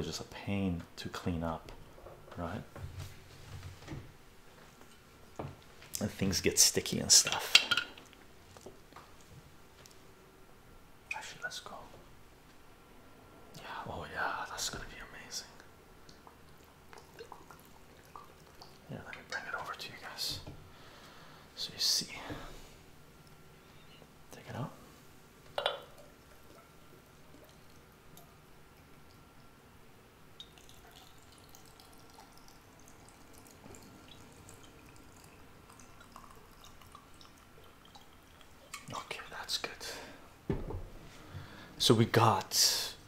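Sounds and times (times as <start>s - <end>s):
liquid trickling and dripping: 15.6s - 20.6s, 25.5s - 29.6s, 30.2s - 39.6s.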